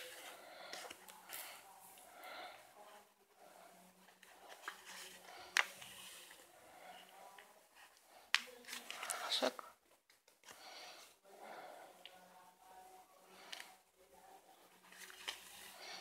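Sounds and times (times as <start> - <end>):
faint voices: 0.0 - 9.8, 10.4 - 16.0.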